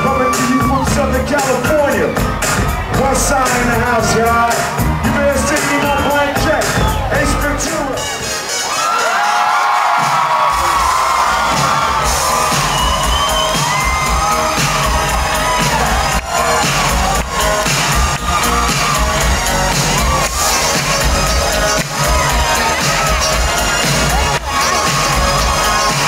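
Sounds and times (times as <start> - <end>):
heavy bass beat: 0.0 - 8.3, 10.0 - 26.0
crowd cheering and screaming: 0.0 - 26.0
live music through speakers: 0.0 - 26.0.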